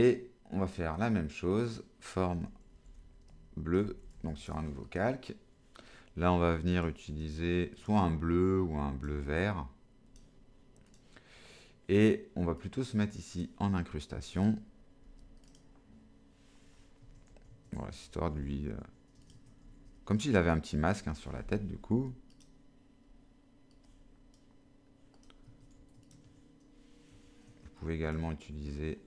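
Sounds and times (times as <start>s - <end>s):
computer mouse clicks: 10.1s - 11.1s, 14.4s - 15.8s, 17.0s - 17.8s, 19.1s - 20.0s, 22.3s - 22.6s, 23.7s - 24.5s, 25.1s - 26.7s.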